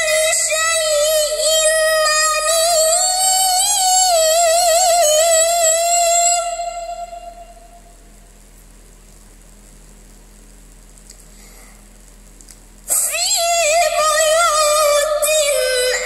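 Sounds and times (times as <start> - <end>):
boy reciting melodically: 0.0 - 7.5, 12.9 - 16.0
faint low hum: 0.0 - 16.0.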